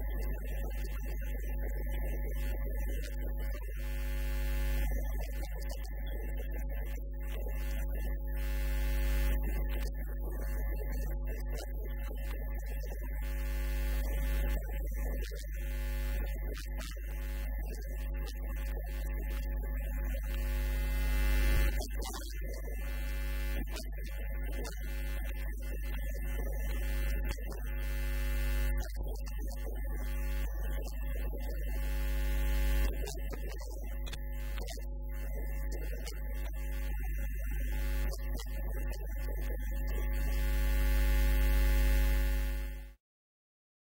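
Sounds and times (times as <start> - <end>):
electrical mains hum: 20.1 - 21.8.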